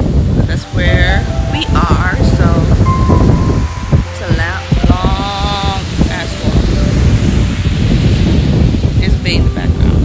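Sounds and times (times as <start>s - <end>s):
wind buffeting microphone: 0.0s - 10.0s
woman talking: 0.4s - 3.0s, 4.0s - 7.2s, 8.9s - 10.0s.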